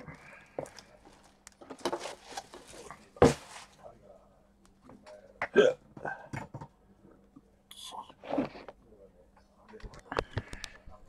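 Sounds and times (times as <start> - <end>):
man hiccup-like vocal sound: 5.4 - 5.8.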